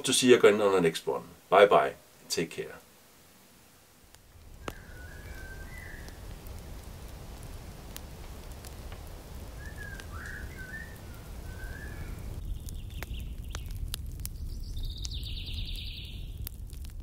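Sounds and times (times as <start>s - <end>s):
bird chirps: 4.6s - 6.2s, 9.6s - 16.4s
bird trilling song: 4.6s - 6.2s, 9.6s - 16.4s.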